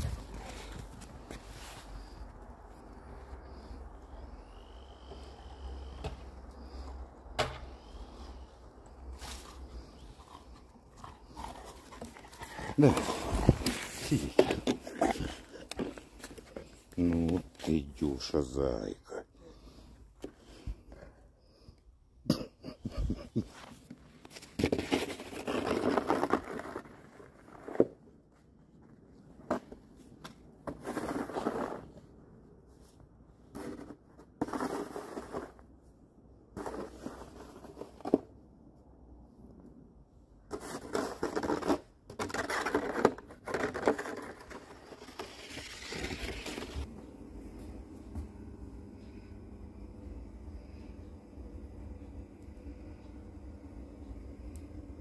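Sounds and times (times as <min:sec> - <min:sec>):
snow shovel scraping snow: 0:24.3 - 0:27.8, 0:30.7 - 0:31.9, 0:33.6 - 0:35.6, 0:44.0 - 0:46.9.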